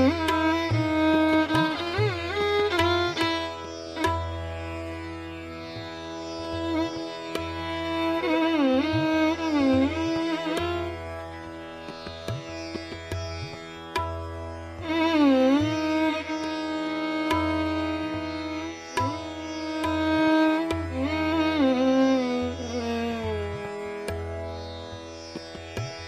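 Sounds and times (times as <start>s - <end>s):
tabla strokes: 0.0s - 5.0s, 5.6s - 26.0s
violin playing bowed notes: 0.0s - 26.0s.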